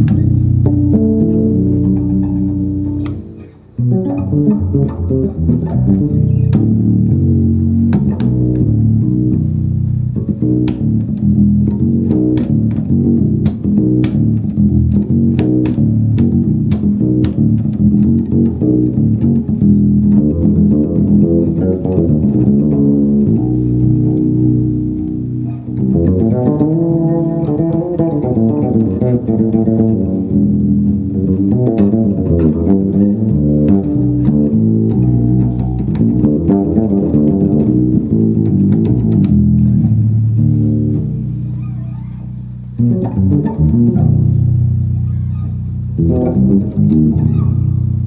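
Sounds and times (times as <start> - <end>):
fretless electric bass playing: 0.0 - 48.0.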